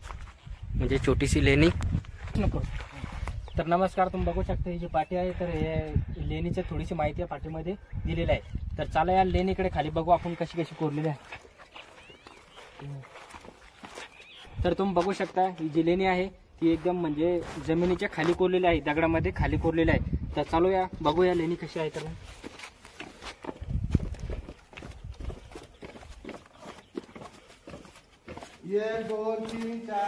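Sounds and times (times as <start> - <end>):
sandal footsteps on stone steps: 10.2 - 16.0, 20.4 - 30.0.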